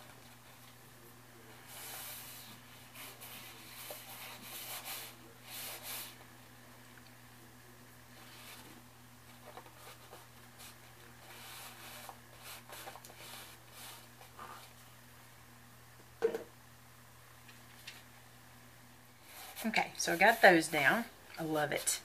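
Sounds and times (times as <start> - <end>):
steady low hum: 0.0 - 22.0
paper rustling and rubbing: 1.6 - 6.3, 8.2 - 14.8, 19.2 - 20.6.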